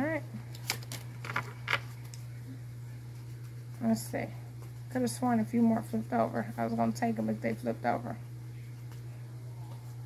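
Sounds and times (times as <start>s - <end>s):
cards being shuffled: 0.5s - 2.3s.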